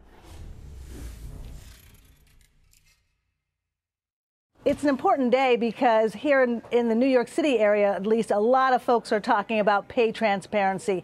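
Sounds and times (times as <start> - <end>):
bass-heavy whoosh: 0.0 - 2.5.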